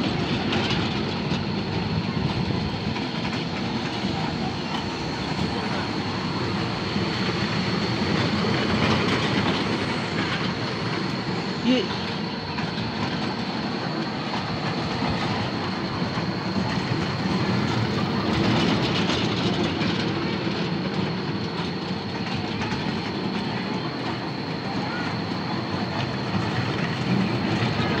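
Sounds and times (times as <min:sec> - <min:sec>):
constant high whine: 0:00.0 - 0:28.0.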